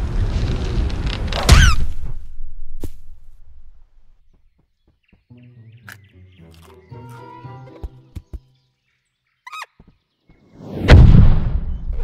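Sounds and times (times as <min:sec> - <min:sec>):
cartoon animal squeak: 0:09.5 - 0:09.7.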